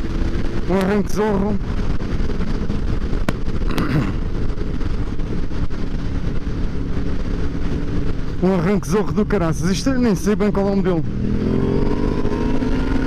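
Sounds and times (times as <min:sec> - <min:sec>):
motorcycle engine running: 0:00.0 - 0:13.0
wind rushing: 0:00.0 - 0:13.0.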